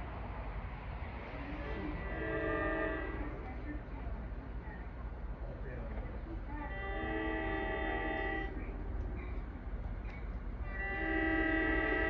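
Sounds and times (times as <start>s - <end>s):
low steady rumble: 0.0s - 12.0s
train horn blast: 1.5s - 3.7s, 6.7s - 8.7s, 10.6s - 12.0s.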